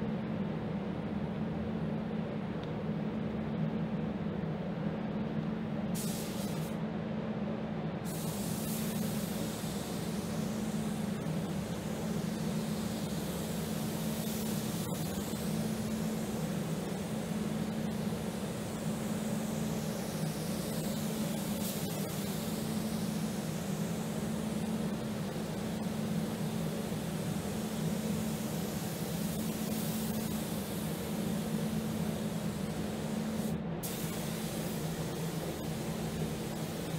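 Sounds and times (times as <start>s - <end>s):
ventilation fans droning: 0.0s - 36.9s
spray gun hissing: 6.0s - 6.8s, 8.1s - 36.9s.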